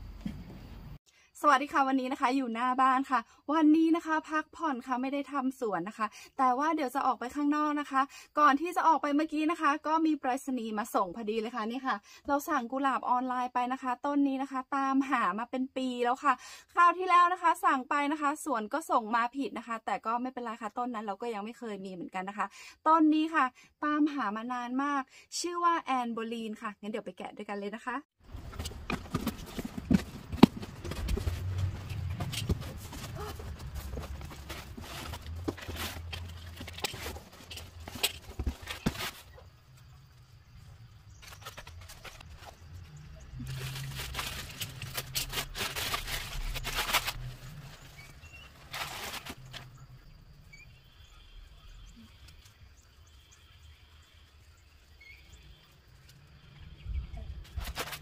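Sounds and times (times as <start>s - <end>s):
knocks and scrapes on cardboard: 28.4s - 39.2s
leaves rustling and ticking: 41.1s - 49.7s.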